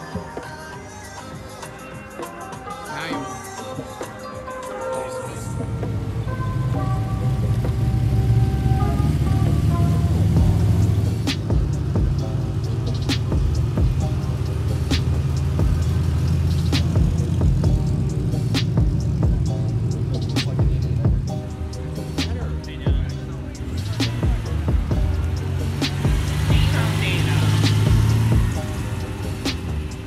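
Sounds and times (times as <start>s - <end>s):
music with steady beat: 0.0s - 30.0s
sports cars driving past: 5.2s - 30.0s.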